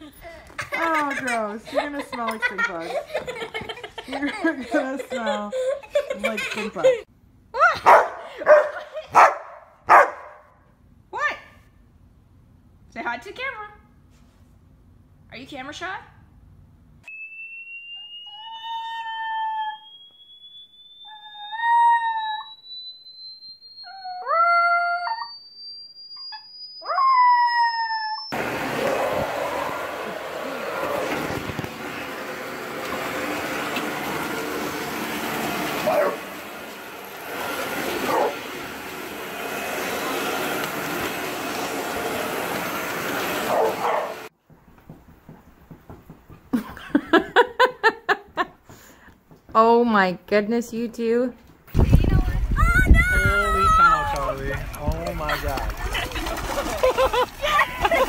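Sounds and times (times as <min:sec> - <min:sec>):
thin steady rising tone: 0:17.1 - 0:35.6
dog howling: 0:18.2 - 0:20.0, 0:21.1 - 0:22.6, 0:23.8 - 0:25.4, 0:26.8 - 0:31.3
vacuum cleaner running: 0:28.3 - 0:44.3, 0:53.3 - 0:58.0.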